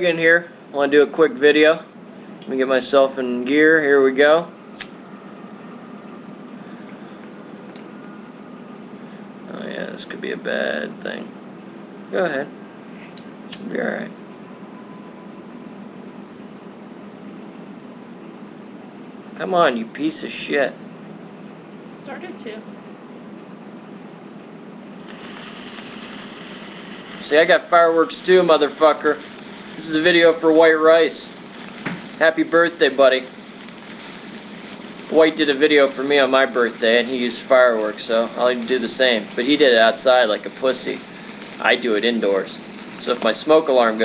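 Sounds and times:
low background noise: 0:00.0 - 0:44.0
room noise hiss: 0:00.0 - 0:44.0
sparkler fizzing: 0:24.9 - 0:44.0.

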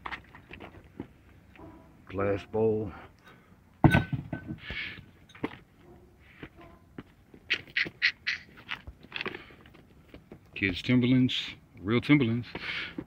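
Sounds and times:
shoes scuffing on pavement: 0:05.4 - 0:10.4.

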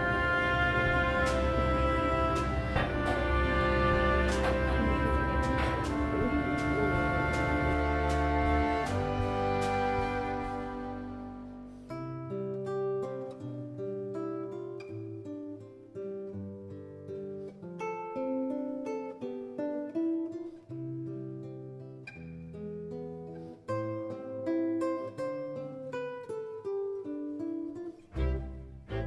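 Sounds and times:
acoustic guitar picking: 0:00.0 - 0:29.0.

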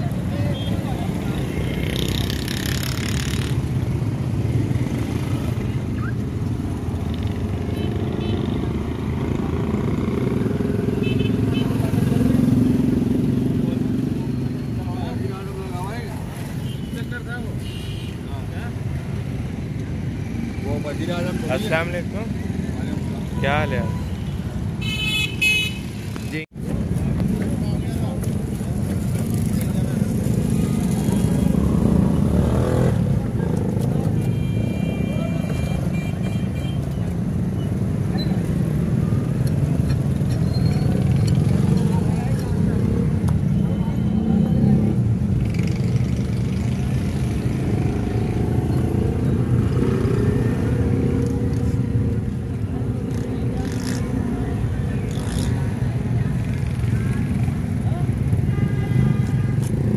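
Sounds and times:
motorcycles and road traffic: 0:00.0 - 0:59.9.

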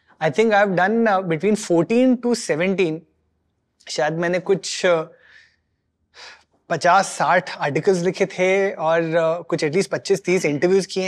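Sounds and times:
man speaking: 0:00.1 - 0:03.1, 0:03.8 - 0:05.3, 0:06.2 - 0:11.0.

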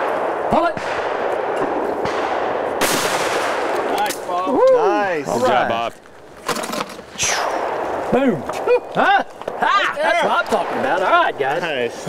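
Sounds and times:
shotgun shot: 0:00.0 - 0:04.0, 0:06.5 - 0:07.8.

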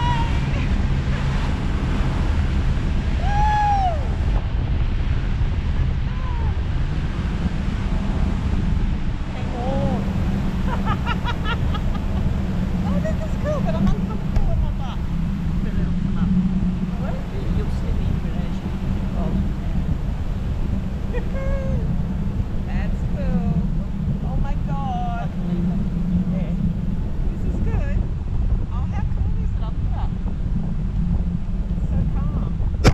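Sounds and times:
wind buffeting microphone: 0:00.0 - 0:32.9.

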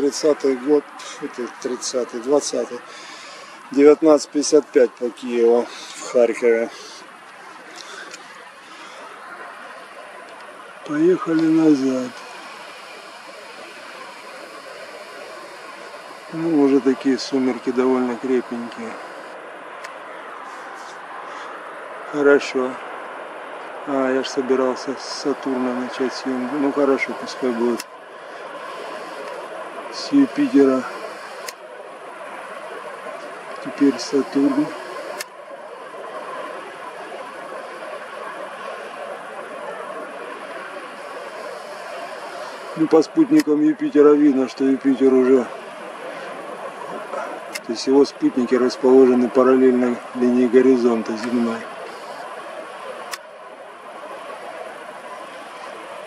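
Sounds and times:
distant road traffic: 0:00.0 - 0:56.0.

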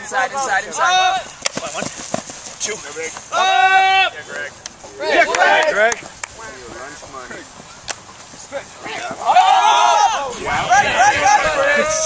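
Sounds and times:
players shouting a call: 0:00.0 - 0:02.0, 0:02.6 - 0:12.0.

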